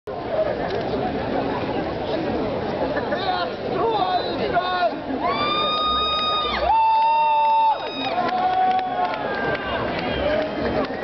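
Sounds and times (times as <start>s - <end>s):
audience voices: 0.1s - 11.0s
long whoops: 5.2s - 9.8s.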